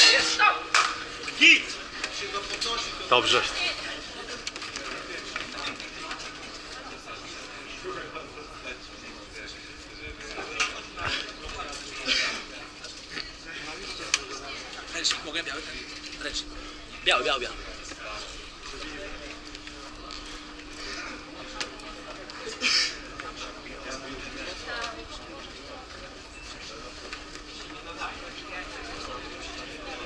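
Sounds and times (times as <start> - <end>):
people shouting: 0.0 - 0.8
steady low hum: 6.3 - 30.0.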